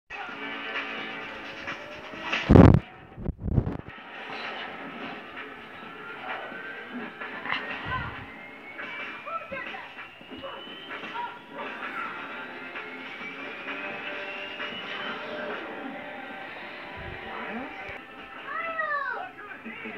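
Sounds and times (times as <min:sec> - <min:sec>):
cartoon soundtrack from television: 0:00.1 - 0:19.9
slow rising whistle-like tone: 0:07.9 - 0:16.0.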